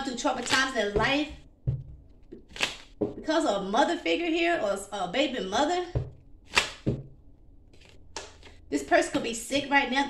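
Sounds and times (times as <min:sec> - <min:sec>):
soft thud: 0:01.0 - 0:02.0, 0:05.9 - 0:06.2.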